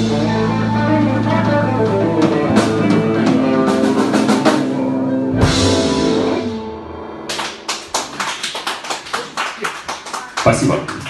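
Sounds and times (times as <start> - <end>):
band final chord: 0.0 - 7.8
audience applauding: 7.3 - 11.0.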